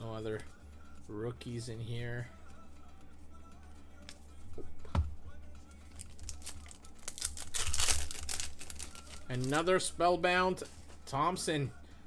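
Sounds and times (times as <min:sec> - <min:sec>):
foil wrapper crinkling and tearing: 0:05.9 - 0:09.7.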